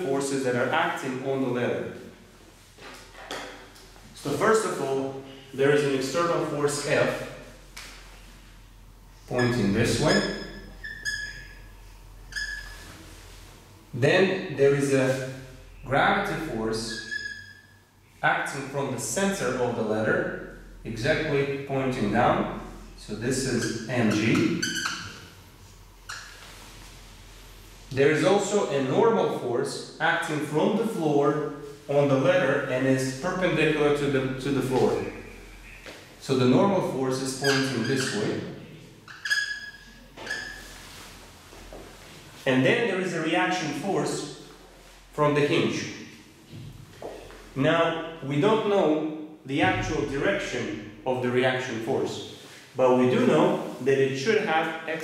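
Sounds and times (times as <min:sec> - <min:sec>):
marker squeaking on whiteboard: 0:09.3 - 0:13.0, 0:16.8 - 0:17.8, 0:23.4 - 0:25.4, 0:26.0 - 0:26.8, 0:37.2 - 0:38.4, 0:39.0 - 0:41.0.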